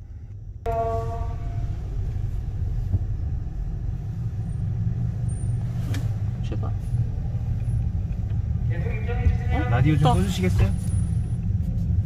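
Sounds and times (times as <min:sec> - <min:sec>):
car engine low rumble: 0:00.0 - 0:12.0
short tone: 0:00.7 - 0:01.8.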